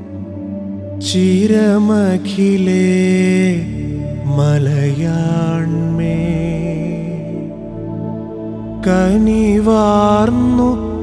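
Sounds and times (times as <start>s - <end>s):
person singing long ornamented notes: 0.0s - 11.0s
steady low drone: 0.0s - 11.0s.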